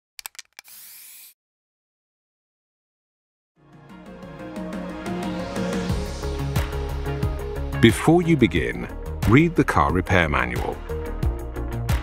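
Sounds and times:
spray can clicks: 0:00.2 - 0:01.4
aerosol spray hiss: 0:00.7 - 0:01.4.

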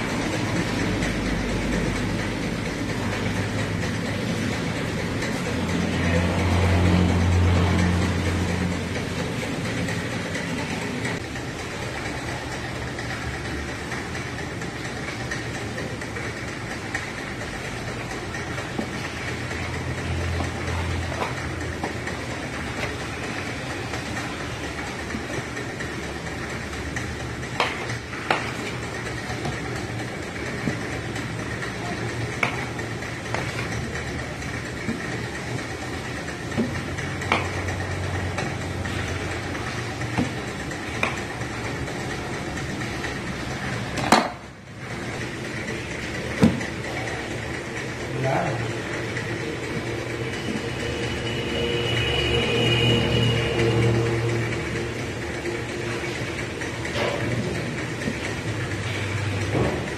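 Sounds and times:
engine-like hum: 0:00.0 - 0:59.9.

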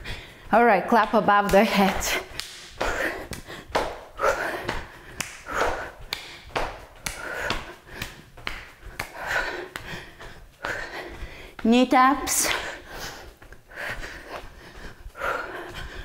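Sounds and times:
heavy panting breaths: 0:00.0 - 0:00.6, 0:01.8 - 0:11.6, 0:12.3 - 0:16.0
sharp hand claps: 0:01.9 - 0:04.0, 0:04.7 - 0:09.2.

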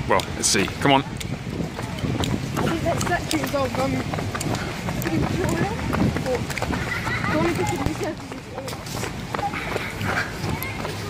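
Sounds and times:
indistinct voices talking: 0:00.0 - 0:11.0
footsteps on gravel: 0:00.2 - 0:11.0.

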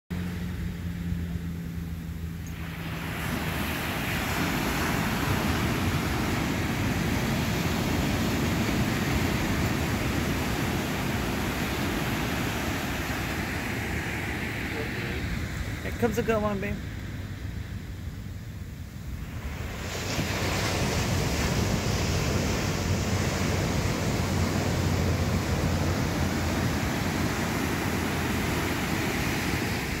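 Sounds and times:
ocean surf breaking on beach: 0:02.4 - 0:18.0, 0:18.7 - 0:30.0.

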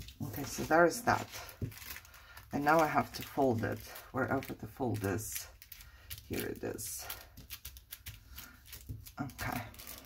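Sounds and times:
paper crinkling and rustling: 0:00.0 - 0:10.0.

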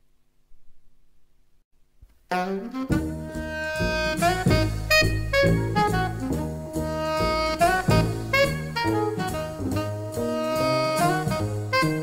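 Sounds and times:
recording hiss: 0:03.0 - 0:12.0.

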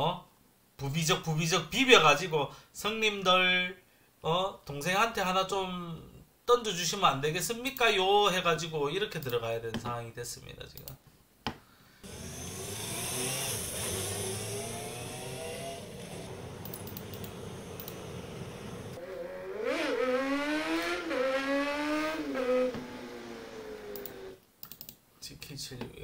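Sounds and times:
motorcycle engine revving high: 0:12.0 - 0:24.4
motorcycle passing by: 0:12.0 - 0:24.4.

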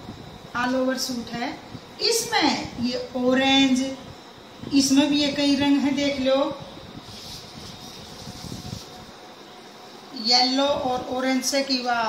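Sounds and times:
steady background hiss: 0:00.0 - 0:12.0
rustling and handling noise: 0:06.9 - 0:10.0.

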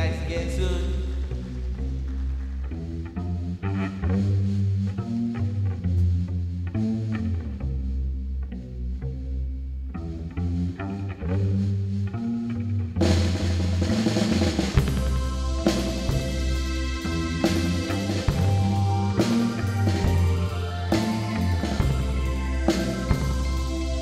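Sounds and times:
electric guitar picking: 0:00.0 - 0:24.0
sustained bass notes: 0:00.0 - 0:24.0
drum kit and cymbals: 0:13.0 - 0:24.0.

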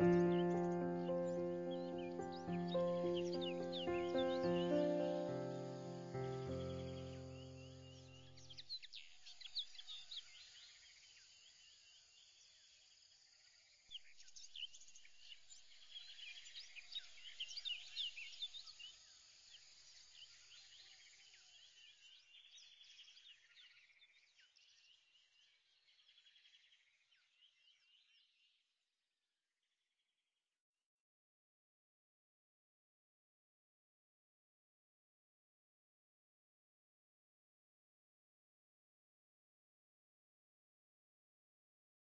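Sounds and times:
birds chirping: 0:00.0 - 0:10.3.

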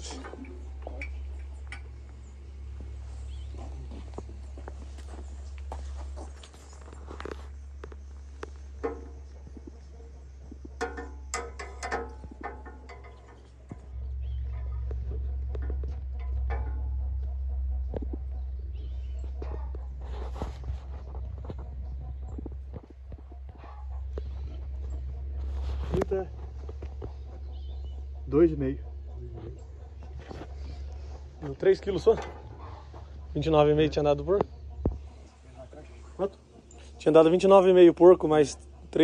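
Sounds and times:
steady low rumble: 0:00.0 - 0:37.0.

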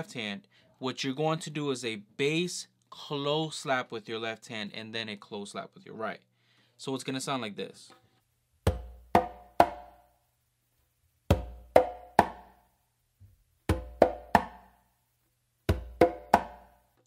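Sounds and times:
congas played by hand: 0:08.7 - 0:10.0, 0:11.3 - 0:12.6, 0:13.7 - 0:14.8, 0:15.7 - 0:16.8.

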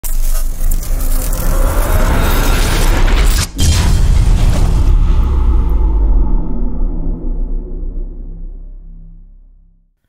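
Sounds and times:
cinematic boom: 0:01.2 - 0:09.9.

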